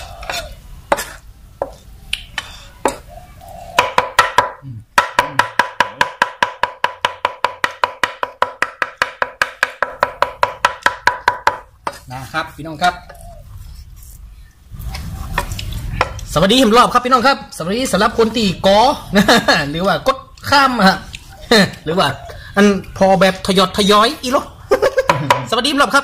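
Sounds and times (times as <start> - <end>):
cleaver chopping on wooden block: 3.8 - 12.0.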